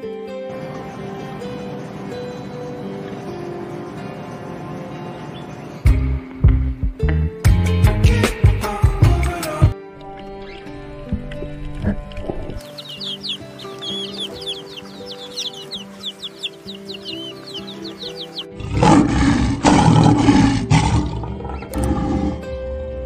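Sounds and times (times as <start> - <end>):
background music: 0.0 - 23.0
chicks peeping: 0.6 - 6.0, 11.7 - 18.9
loud growling roar: 18.6 - 22.5.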